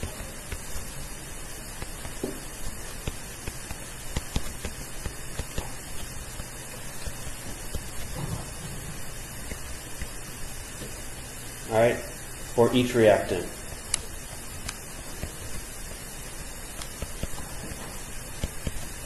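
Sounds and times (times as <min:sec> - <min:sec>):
steady hiss: 0:00.0 - 0:19.0
stylus tapping on tablet screen: 0:03.0 - 0:10.2, 0:16.7 - 0:19.0.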